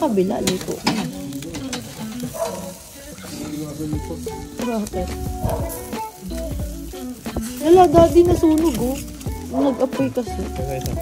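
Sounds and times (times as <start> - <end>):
food sizzling on charcoal grill: 0.0 - 11.0
metal spatula scraping grill: 0.0 - 11.0.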